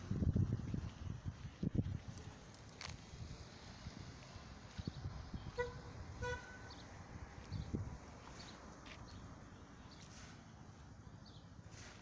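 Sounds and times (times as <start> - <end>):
vehicle horn toots: 5.6 - 6.8.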